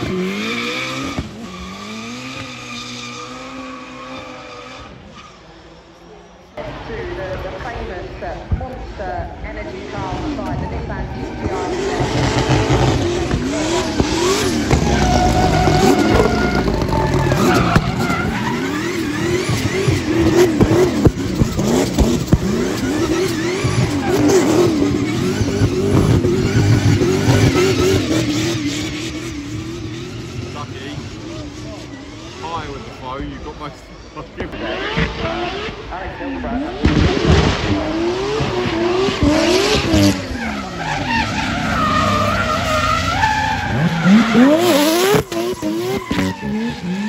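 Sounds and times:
car engine revving hard: 0.0 - 5.1, 11.0 - 47.0
tyre squeal and scrubbing: 13.6 - 29.1, 40.0 - 47.0.

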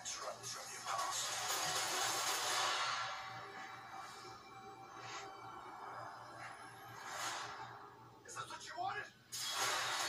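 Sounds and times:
faint trailer soundtrack hissing swell: 0.0 - 9.6.

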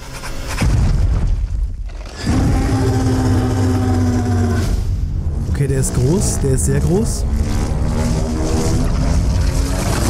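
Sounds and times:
deep growling tone: 2.1 - 10.0.

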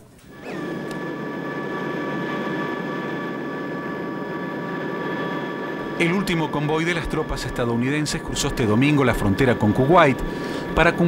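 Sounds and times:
aircraft engine drone with whine: 0.2 - 11.0.

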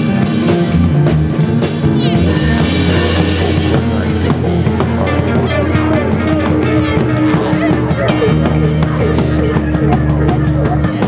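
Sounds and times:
bending electric guitar notes: 0.0 - 11.0
drums: 0.0 - 11.0
held bass note: 0.0 - 11.0.

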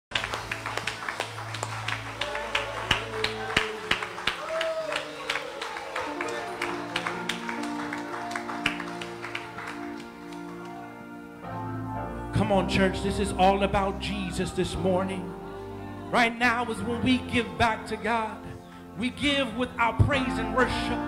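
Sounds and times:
held keyboard chords: 0.1 - 4.4, 5.0 - 21.0
worship band playing: 0.1 - 21.0.

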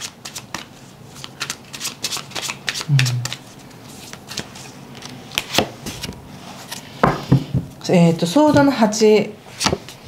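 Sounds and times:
cards shuffling by hand: 0.0 - 6.8.

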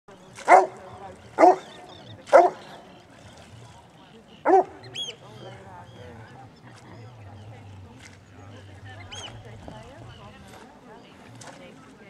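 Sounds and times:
dog barking deeply: 0.4 - 0.8, 1.4 - 2.7, 4.4 - 4.9.

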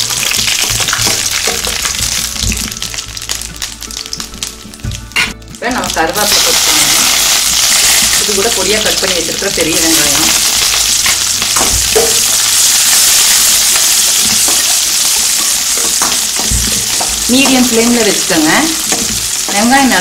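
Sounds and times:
oil sizzling in a pan: 0.0 - 20.0
onions sizzling: 0.0 - 20.0.

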